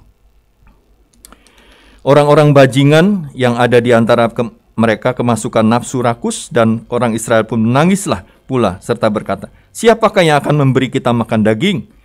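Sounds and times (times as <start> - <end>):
faint sharp clicks: 0.6 - 2.0.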